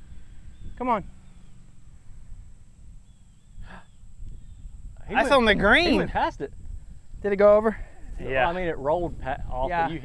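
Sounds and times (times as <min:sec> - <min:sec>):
wind on microphone: 0:00.0 - 0:10.0
faint bird whistles: 0:00.2 - 0:01.7, 0:03.0 - 0:04.8.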